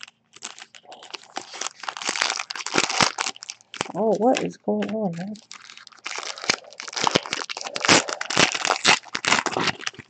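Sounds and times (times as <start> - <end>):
foil wrapper tearing and crinkling: 0.0 - 10.0.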